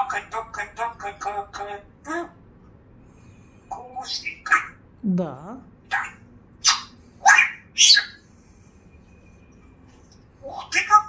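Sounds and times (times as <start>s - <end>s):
parrot harsh calls: 3.6s - 4.8s, 5.8s - 8.3s, 10.4s - 11.0s.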